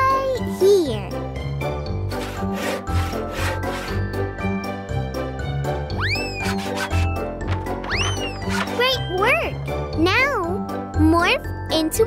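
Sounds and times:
bouncy children's music: 0.0 - 12.0
cartoon hand saw cutting wood: 2.1 - 4.2, 6.1 - 7.2
swooping whistle glide: 6.0 - 6.6.

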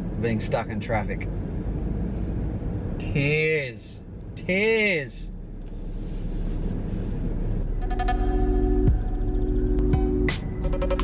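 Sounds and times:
background music with beat: 7.8 - 11.0.

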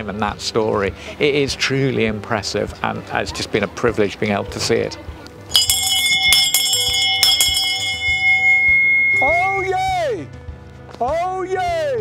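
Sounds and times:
brass handbell ringing: 5.5 - 9.7.

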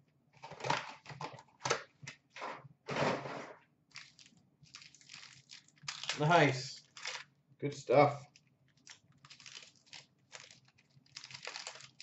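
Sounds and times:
wrapper crinkling and tearing: 3.9 - 7.3, 8.2 - 12.0.

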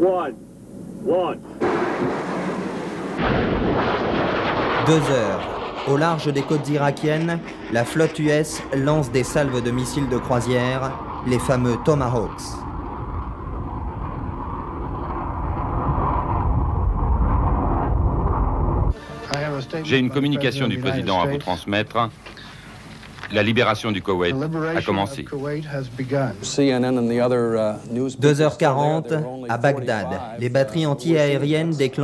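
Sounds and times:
rocket booster roar: 1.0 - 19.0.

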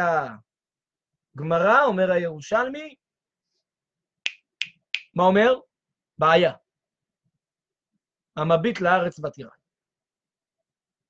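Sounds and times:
finger snaps: 4.2 - 5.1.

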